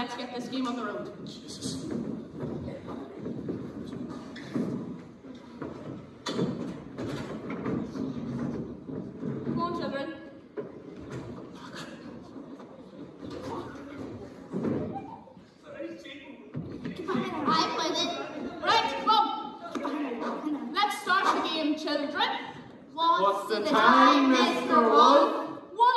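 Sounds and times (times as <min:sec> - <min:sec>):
furniture knocking on wooden stage: 0:01.7 - 0:09.9
indistinct voices: 0:11.1 - 0:25.9.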